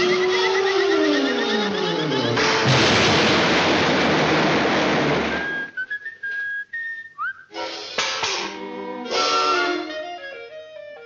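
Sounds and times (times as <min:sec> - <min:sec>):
whistled tune: 0:00.0 - 0:02.4, 0:05.3 - 0:07.6
cartoon crash rumble: 0:02.4 - 0:05.8.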